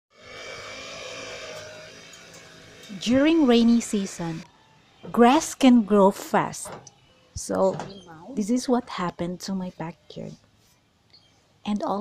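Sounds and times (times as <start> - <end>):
brush cutter engine drone: 0.1 - 6.5.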